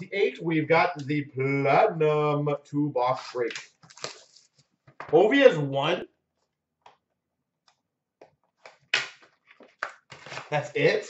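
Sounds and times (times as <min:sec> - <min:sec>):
cardboard box and packs rustling: 0:09.5 - 0:10.6.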